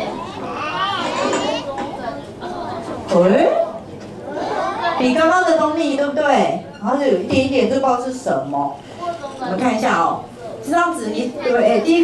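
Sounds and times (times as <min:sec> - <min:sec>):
children talking and calling out: 0:00.0 - 0:05.2, 0:08.9 - 0:10.6, 0:11.2 - 0:12.0.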